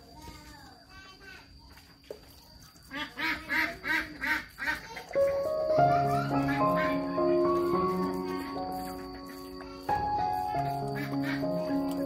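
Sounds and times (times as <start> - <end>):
bird calling: 5.1 - 12.0
background music with held notes: 5.2 - 12.0.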